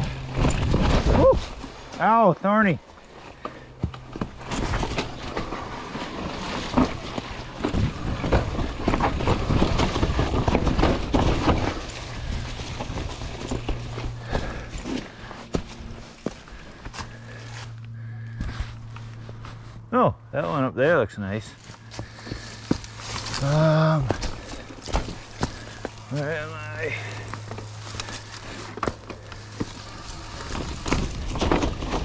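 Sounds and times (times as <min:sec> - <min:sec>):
bike rattling and knocking: 0:00.0 - 0:02.1, 0:02.8 - 0:19.8, 0:21.5 - 0:32.0
bike tyres through dry leaves: 0:00.0 - 0:20.0, 0:21.0 - 0:32.0
steady low hum: 0:00.0 - 0:32.0.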